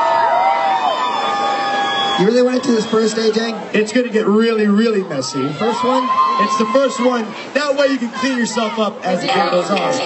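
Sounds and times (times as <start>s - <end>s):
audience screaming and cheering: 0.0s - 3.8s, 4.8s - 10.0s.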